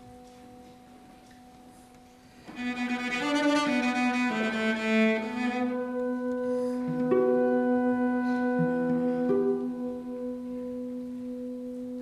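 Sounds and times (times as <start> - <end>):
cello bowed note: 2.5 - 12.0.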